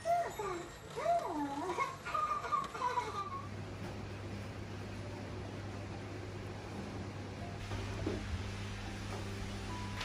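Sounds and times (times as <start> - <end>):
electric oven humming: 0.0 - 10.0
cartoon child giggling: 2.1 - 3.5.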